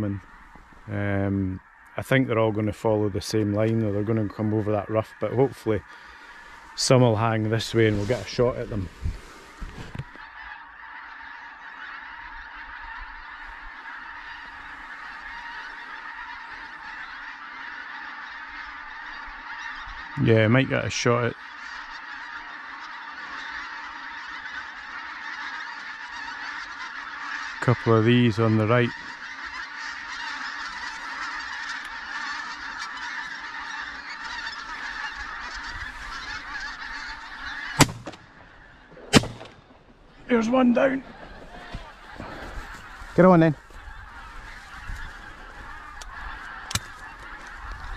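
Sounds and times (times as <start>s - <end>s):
geese calling in flight: 0.0s - 47.9s
shotgun shots: 37.8s - 38.3s, 39.0s - 39.9s.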